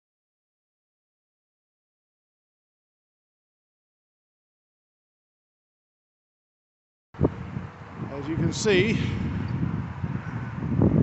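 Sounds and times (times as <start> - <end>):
wind buffeting microphone: 7.2 - 11.0.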